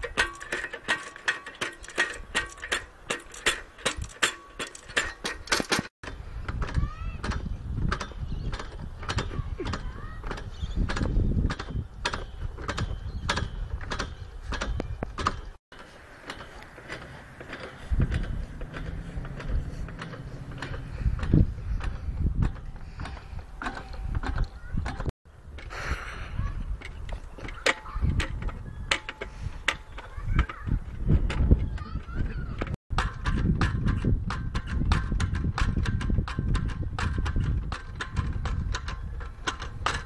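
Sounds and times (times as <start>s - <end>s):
metal pivots clacking: 0.0s - 25.7s, 26.5s - 40.0s.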